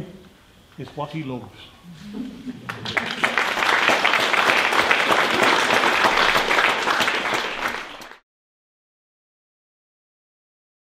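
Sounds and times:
audience applauding: 2.6 - 8.2.

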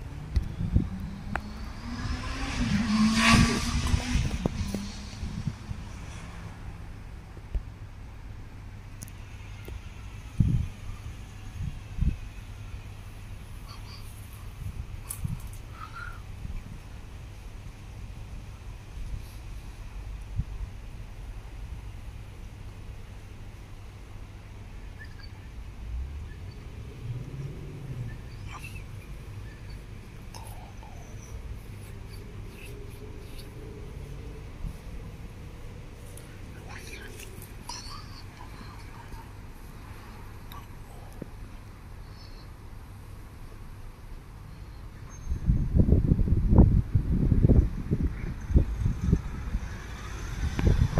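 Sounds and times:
distant jet engine rumble: 23.0 - 50.9.

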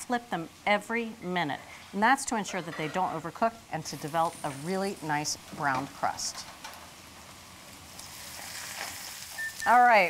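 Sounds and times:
steaks sizzling in oil: 3.8 - 10.0.

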